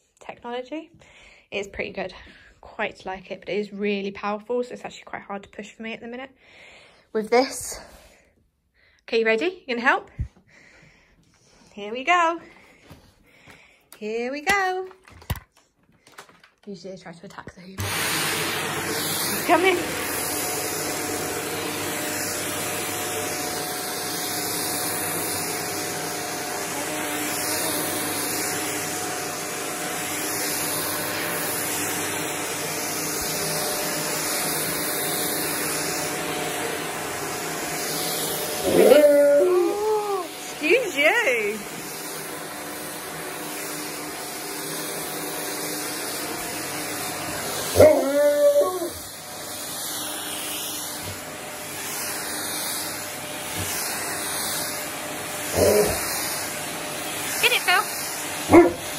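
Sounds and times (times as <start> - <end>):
vacuum cleaner humming: 9.2 - 15.3, 16.1 - 58.9
dog whining howls: 38.6 - 40.3, 47.8 - 49.1.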